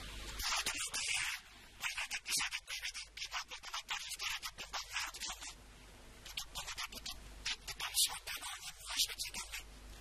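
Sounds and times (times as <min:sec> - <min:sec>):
steady hiss: 0:00.0 - 0:10.0
distorted man speaking: 0:00.4 - 0:05.6, 0:06.3 - 0:09.7.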